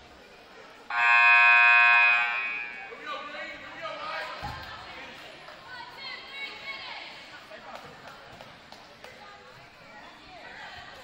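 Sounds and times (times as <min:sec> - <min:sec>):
scoreboard horn buzz: 0:00.9 - 0:03.0.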